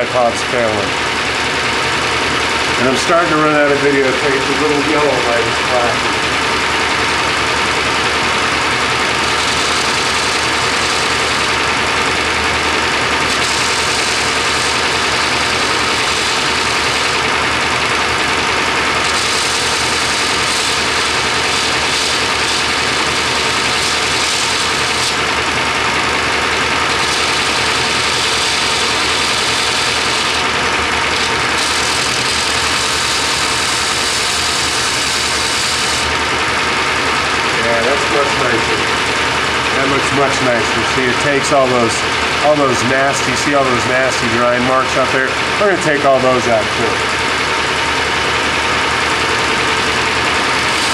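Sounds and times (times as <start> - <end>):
belt grinder running: 0.0 - 50.9
blade grinding hiss: 26.9 - 30.4.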